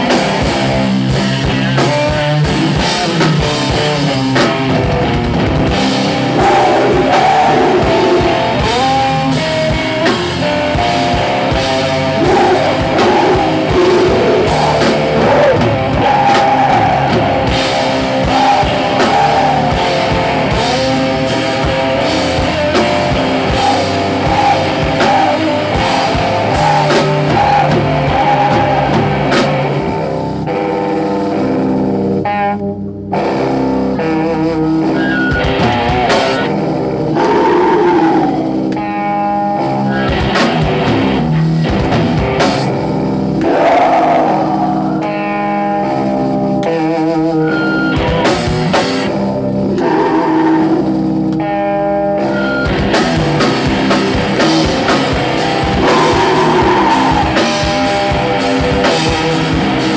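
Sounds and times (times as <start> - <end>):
live rock band playing: 0.0 - 59.9.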